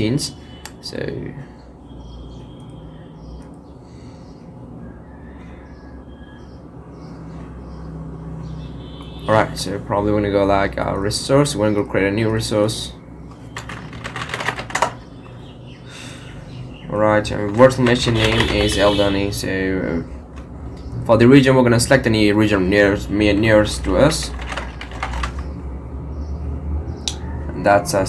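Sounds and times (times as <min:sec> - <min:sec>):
computer keyboard typing: 0:13.4 - 0:15.3, 0:17.3 - 0:19.2, 0:23.2 - 0:25.6.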